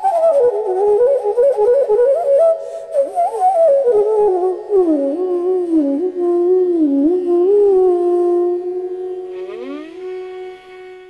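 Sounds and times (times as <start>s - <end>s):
bamboo flute long note: 0.0s - 11.0s
instrument sliding up in pitch: 8.0s - 11.0s.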